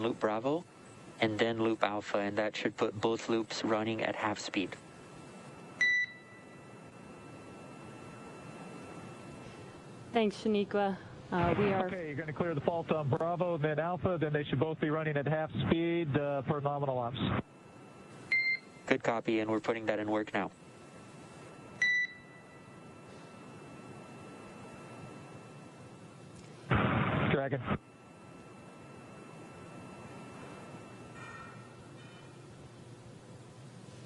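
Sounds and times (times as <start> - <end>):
faint radio line hiss: 0.0 - 34.0.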